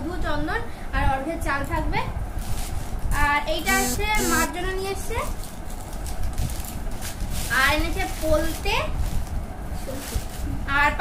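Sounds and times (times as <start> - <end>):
person singing: 3.7 - 4.5.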